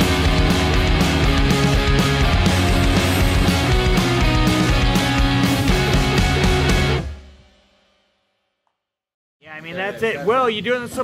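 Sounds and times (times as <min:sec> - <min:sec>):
punk rock song: 0:00.0 - 0:07.4.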